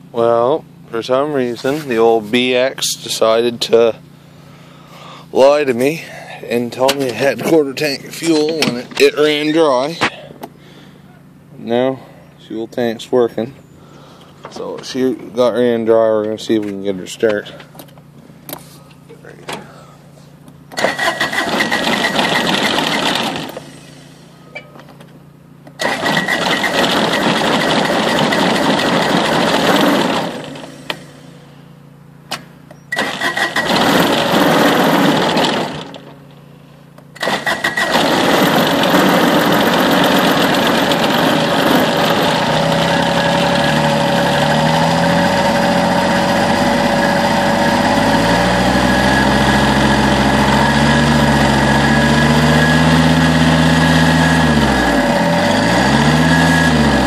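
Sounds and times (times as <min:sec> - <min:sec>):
tractor engine running: 0:00.8 - 0:57.0
diesel engine cranking: 0:01.0 - 0:57.0.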